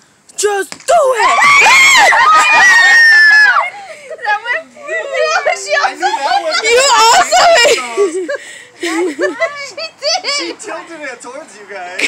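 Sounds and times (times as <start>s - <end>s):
young women laughing and calling out: 0.4s - 10.9s.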